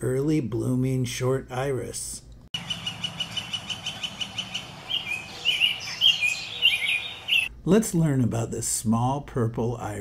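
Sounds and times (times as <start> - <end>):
bird chirping and warbling: 2.6 - 7.5.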